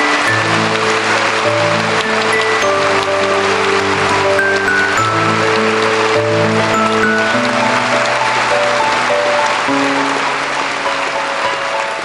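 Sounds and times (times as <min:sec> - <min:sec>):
audience applause: 0:00.0 - 0:12.0
background music: 0:00.0 - 0:12.0.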